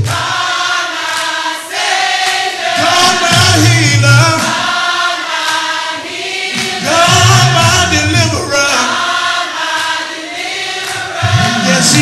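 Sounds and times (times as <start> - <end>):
group singing gospel song: 0.0 - 12.0
lead singer's low voice: 2.8 - 4.6, 6.8 - 9.0, 11.2 - 12.0.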